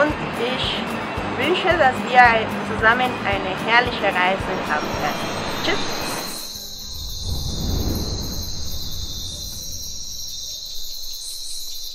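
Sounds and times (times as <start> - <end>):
high-pitched insect chirping: 4.6 - 11.9
low rumble: 6.6 - 11.0.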